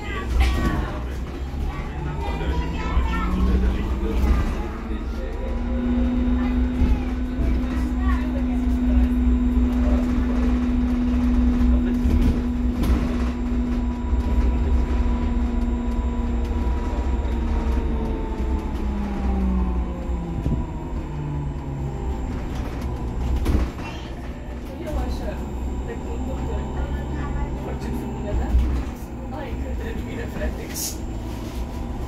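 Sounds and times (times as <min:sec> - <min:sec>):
low road rumble: 0:00.0 - 0:32.0
electric drive whine: 0:01.6 - 0:32.0.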